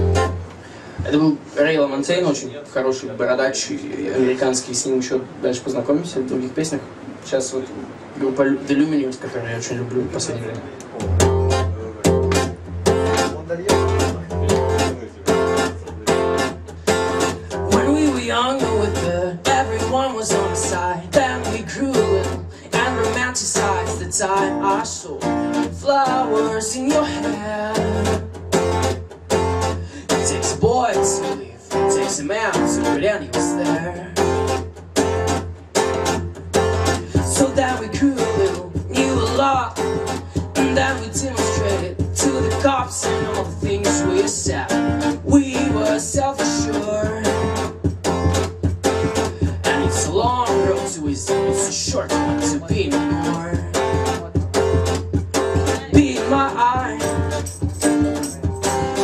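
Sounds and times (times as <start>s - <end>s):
acoustic guitar strumming: 0.0s - 2.0s, 10.9s - 59.0s
man singing into microphone: 17.5s - 28.2s, 30.0s - 34.5s, 37.0s - 47.7s, 49.2s - 54.8s, 55.6s - 57.6s.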